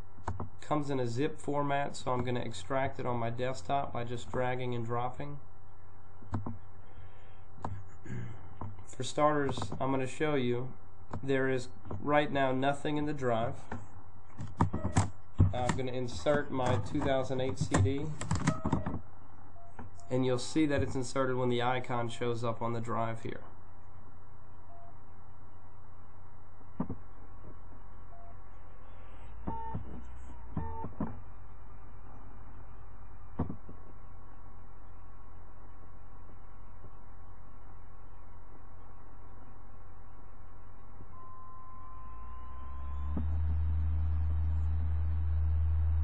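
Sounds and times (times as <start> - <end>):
disc drive spinning whine: 0.0 - 46.0
low hum: 0.0 - 46.0.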